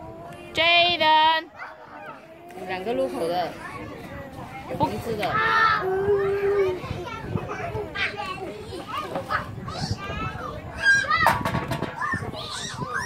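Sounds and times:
children squealing and calling: 1.5s - 13.0s
sharp knocks: 11.2s - 12.0s.

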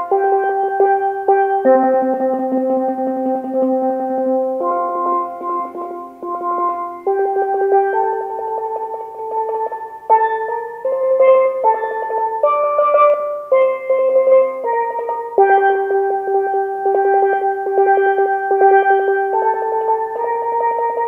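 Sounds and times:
steel pan melody: 0.0s - 21.0s.

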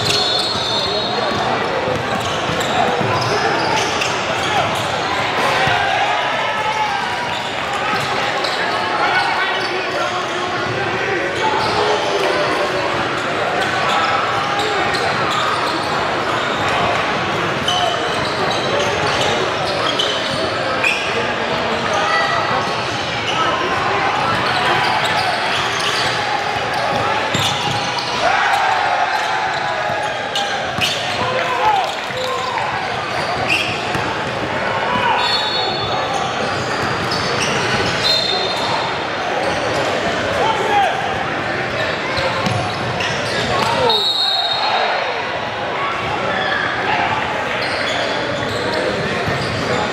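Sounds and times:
crowd and players calling out: 0.0s - 49.9s.

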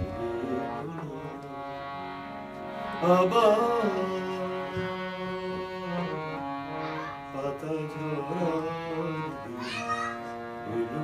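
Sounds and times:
harmonium playing held chords: 0.0s - 11.0s.

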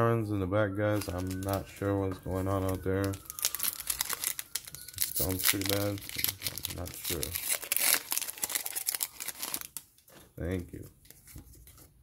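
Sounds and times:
foil wrapper crinkling: 0.9s - 10.2s.

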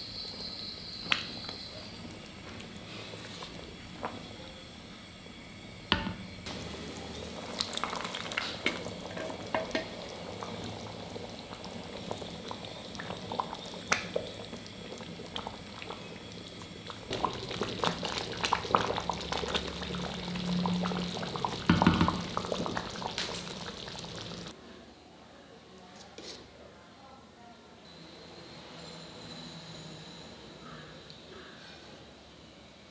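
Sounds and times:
pudding bubbling in a pot: 6.0s - 24.6s.

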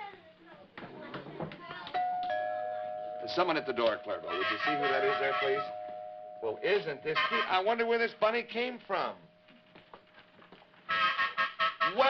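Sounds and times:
two-note doorbell chime: 2.0s - 7.2s.

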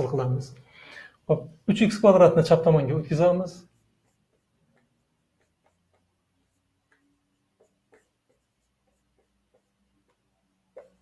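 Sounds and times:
marker writing on whiteboard: 3.6s - 11.0s.

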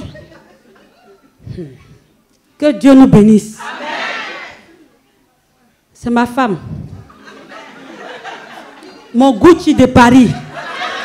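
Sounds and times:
murmur of voices: 3.3s - 11.0s.

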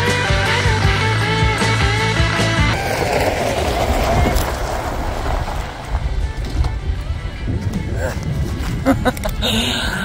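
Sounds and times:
rock music: 0.0s - 2.9s
tyres crunching on gravel: 2.8s - 7.8s.

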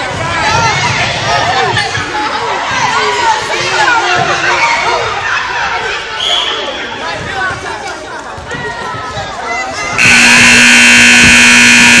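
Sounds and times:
scoreboard buzzer: 10.0s - 12.0s.

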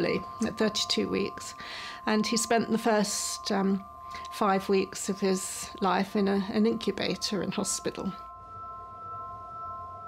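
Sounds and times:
soft drone music: 0.0s - 10.0s.

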